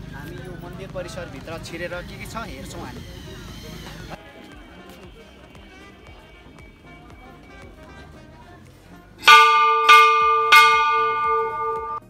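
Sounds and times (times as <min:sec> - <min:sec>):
large metal bell ringing: 0:09.2 - 0:12.0.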